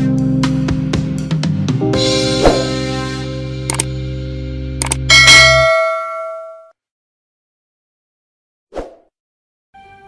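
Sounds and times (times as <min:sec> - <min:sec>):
bright bell-like chime: 0:05.1 - 0:06.7.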